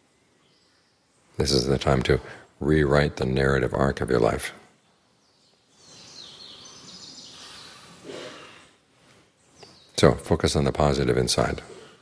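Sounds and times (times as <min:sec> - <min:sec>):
faint background noise: 0:00.0 - 0:12.0
high bird chirps: 0:05.2 - 0:08.7.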